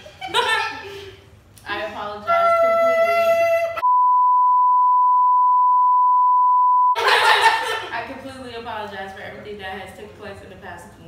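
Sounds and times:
censor bleep tone: 3.8 - 7.0.

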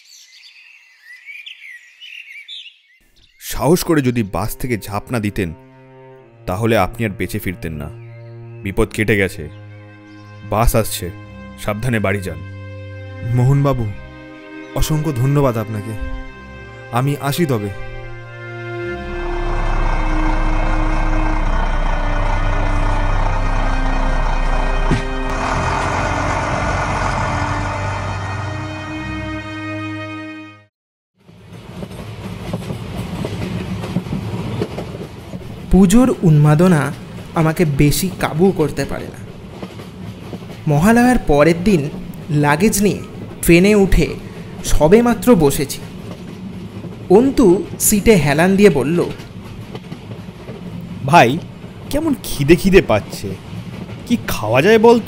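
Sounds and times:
train rumbling on rails: 14.8 - 29.4, 31.2 - 55.0
bus engine idling: 18.9 - 29.1.

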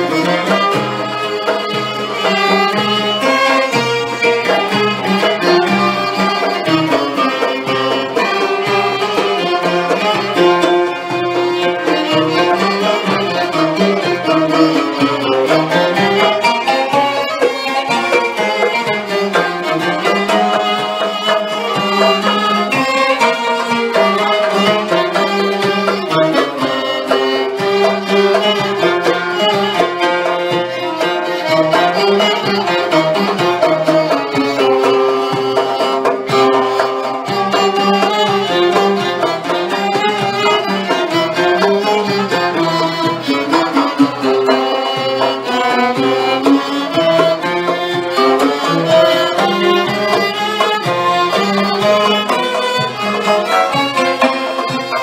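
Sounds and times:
bowed violins melody: 0.0 - 55.0
plucked ouds: 0.0 - 55.0.

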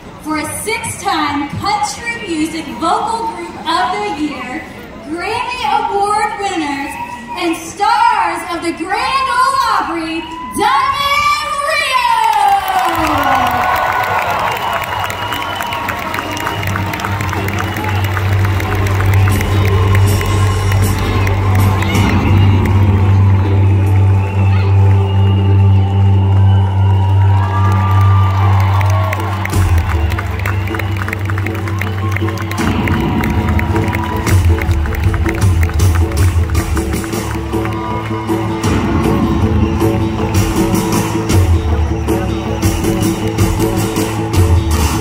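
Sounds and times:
crowd cheering and whooping: 9.8 - 45.0
loud live concert music: 12.5 - 45.0.

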